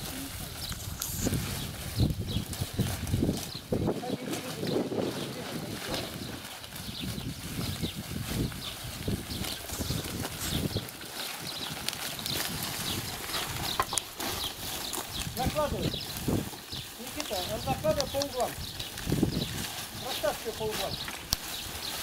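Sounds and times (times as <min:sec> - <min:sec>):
dry bark rustling and crackling: 0:00.0 - 0:22.0
footsteps crunching on bark: 0:00.0 - 0:22.0.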